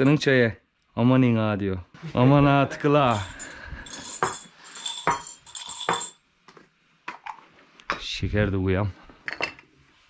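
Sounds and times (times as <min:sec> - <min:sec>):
tea glasses and spoons clinking: 0:03.0 - 0:06.2.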